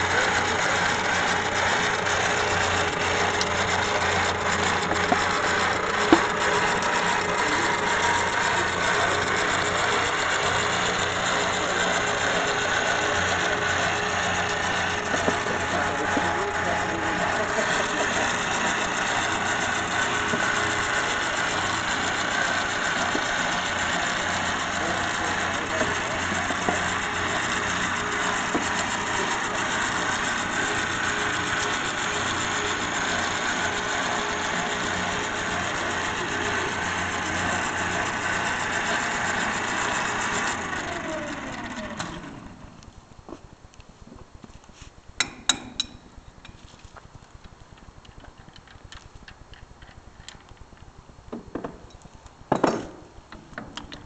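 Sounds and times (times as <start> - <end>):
power drive threading pipe: 0.0 - 43.0, 45.2 - 46.6.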